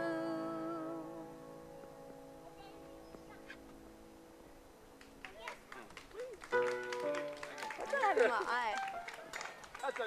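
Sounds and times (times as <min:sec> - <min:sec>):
hand claps: 0:05.0 - 0:10.0.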